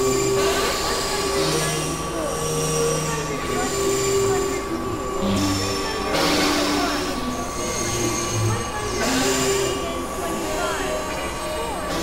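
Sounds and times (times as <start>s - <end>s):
high drone tone: 0.0s - 12.0s
low drone tone: 0.0s - 12.0s
synthesizer noise music: 0.0s - 12.0s.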